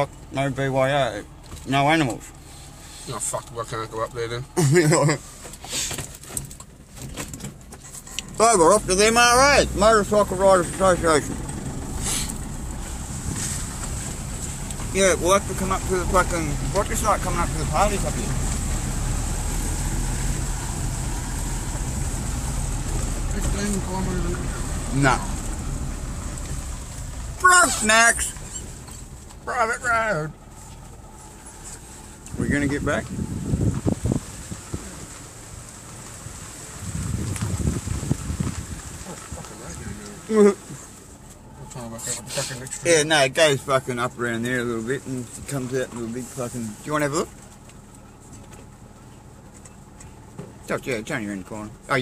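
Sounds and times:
engine rumble: 0.0s - 52.0s
tyres on dirt track: 0.0s - 52.0s
wind buffeting microphone: 32.3s - 35.1s, 36.8s - 39.8s.

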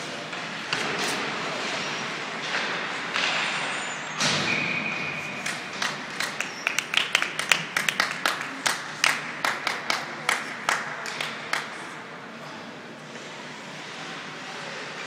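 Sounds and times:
rink crowd noise: 0.0s - 15.0s
quick sharp claps: 5.4s - 11.8s.

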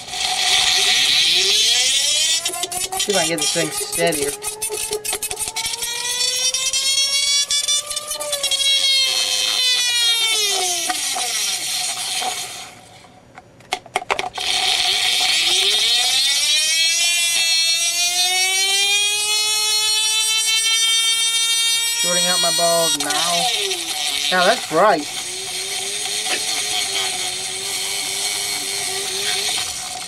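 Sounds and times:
motor whining: 0.0s - 13.0s, 14.4s - 30.0s.

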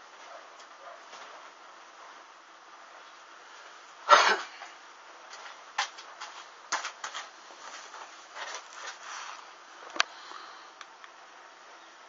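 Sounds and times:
faint steady hiss: 0.0s - 12.0s
person coughing: 4.1s - 4.6s.

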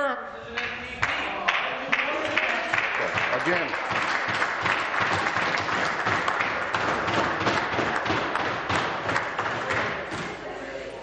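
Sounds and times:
many hands clapping: 0.5s - 10.4s.

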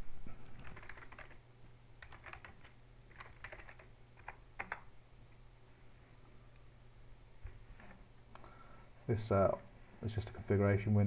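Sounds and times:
typing on computer keyboard: 0.6s - 1.4s, 2.0s - 4.9s.

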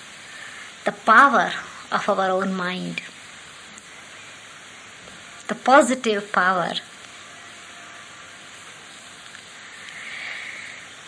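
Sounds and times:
recording hiss: 0.0s - 11.0s.

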